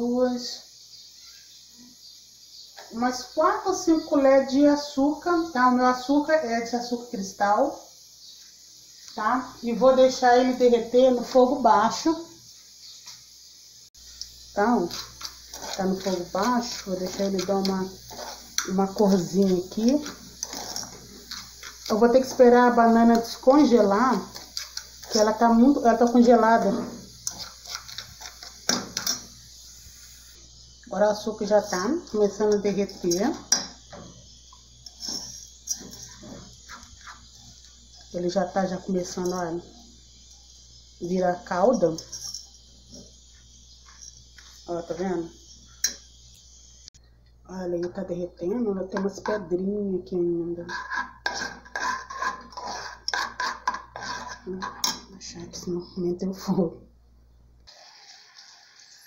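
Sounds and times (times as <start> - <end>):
spoon scraping sugar in saucepan: 14.1 - 30.3, 31.0 - 34.2, 34.8 - 39.8, 41.4 - 45.1, 50.5 - 55.2.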